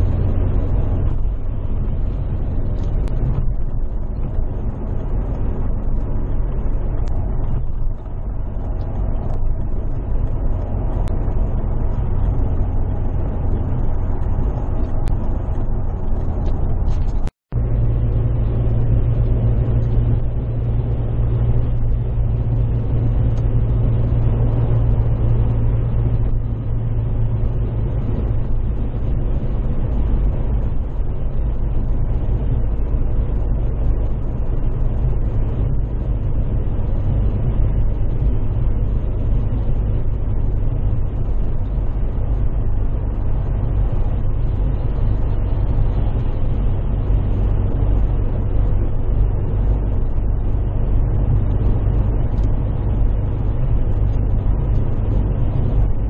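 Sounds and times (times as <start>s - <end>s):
car engine drone: 0.0s - 56.0s
tyre and road noise: 0.0s - 56.0s.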